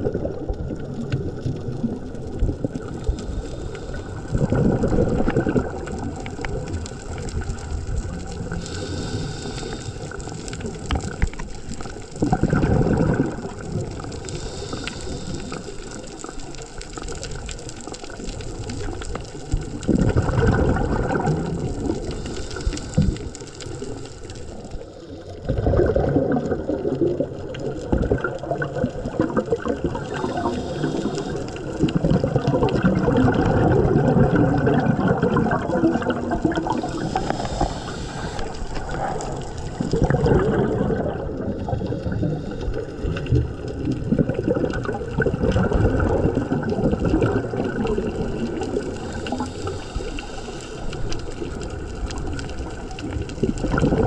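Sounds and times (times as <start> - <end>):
exhaled bubbles gurgling: 0.0 - 54.0
scuba regulator breathing: 2.9 - 5.1, 8.5 - 11.2, 13.4 - 16.6, 21.4 - 24.9, 29.7 - 32.4, 36.0 - 40.8, 41.6 - 43.3, 48.0 - 51.6.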